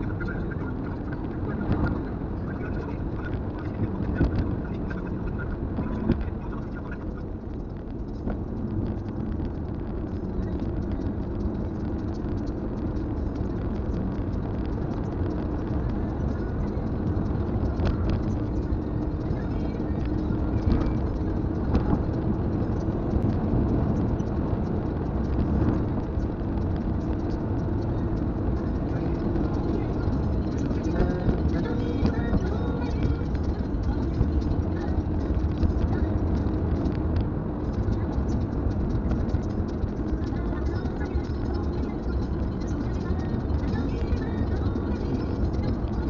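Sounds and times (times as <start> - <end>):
low engine drone: 0.0 - 46.0
road and tyre rumble: 0.0 - 46.0.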